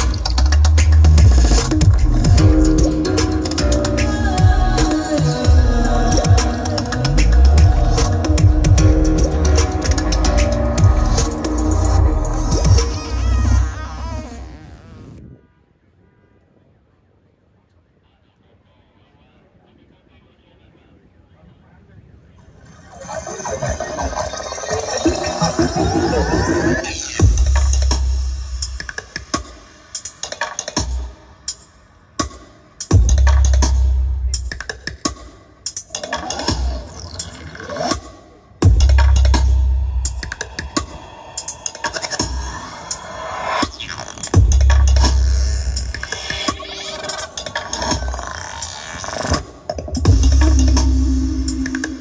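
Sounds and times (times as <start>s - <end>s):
electronic dance music: 0.0s - 15.2s, 22.6s - 31.0s, 38.3s - 52.0s
heavy sub-bass drop: 0.0s - 15.3s, 25.4s - 28.8s, 32.9s - 34.5s, 38.6s - 40.6s, 44.4s - 46.0s, 50.0s - 52.0s
rising sweep: 7.4s - 15.3s.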